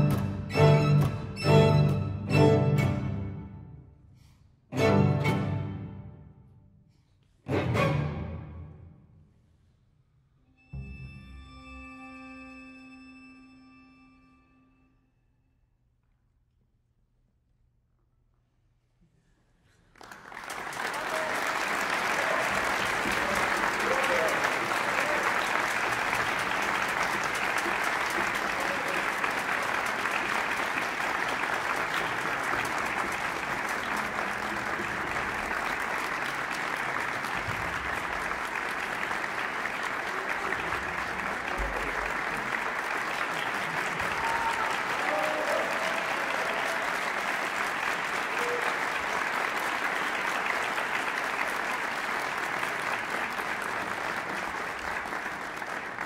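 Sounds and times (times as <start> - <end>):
large audience applauding: 0.0 - 2.0, 19.8 - 56.0.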